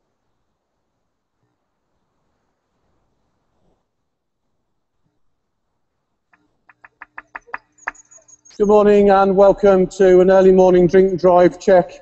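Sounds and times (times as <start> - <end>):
faint steady hum: 0.0 - 12.0
rapid sharp clicks: 6.3 - 8.6.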